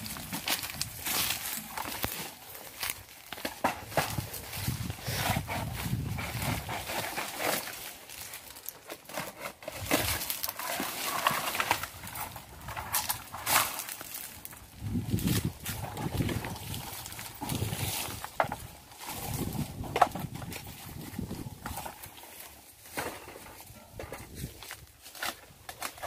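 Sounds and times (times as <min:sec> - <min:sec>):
footsteps on grassy ground: 0:00.0 - 0:08.7, 0:11.2 - 0:26.0
bamboo ladder dragging and knocking: 0:00.0 - 0:26.0.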